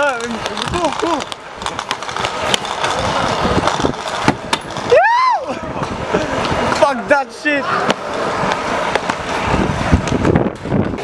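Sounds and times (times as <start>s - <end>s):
scooter wheels rolling on paving: 0.0s - 11.0s.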